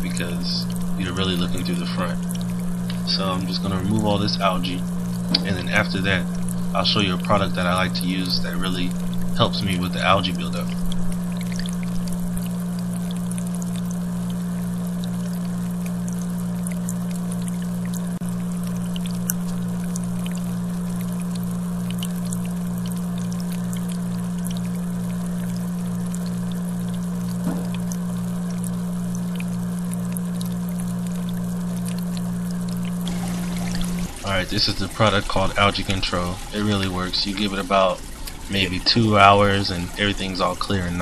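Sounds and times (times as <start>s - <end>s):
filter motor humming: 0.0s - 41.0s
water pouring and trickling: 0.0s - 41.0s.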